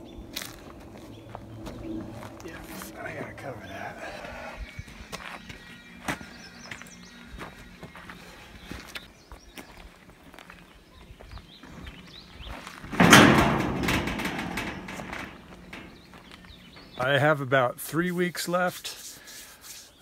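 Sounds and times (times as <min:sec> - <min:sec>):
footsteps on dirt: 0:00.0 - 0:17.2
beam scraping and knocking: 0:12.7 - 0:17.4.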